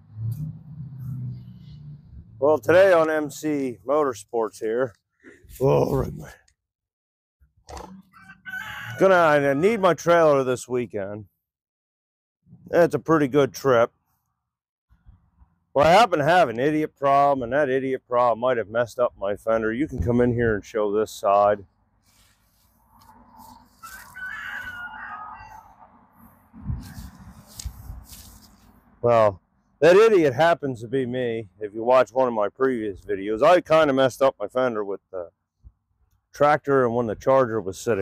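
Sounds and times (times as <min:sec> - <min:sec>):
rooster crowing: 0:08.1 - 0:09.6, 0:23.8 - 0:25.8
high-pitched animal call: 0:23.4 - 0:25.8.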